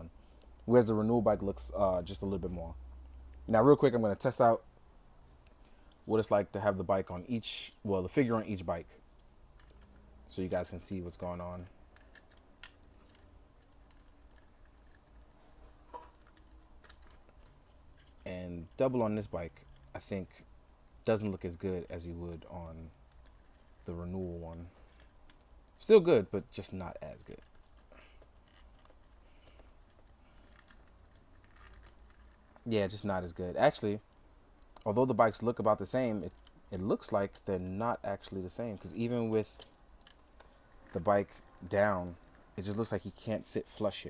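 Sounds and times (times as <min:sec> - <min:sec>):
action figure clicks and scraping: 0:11.5 - 0:18.8, 0:27.3 - 0:32.7.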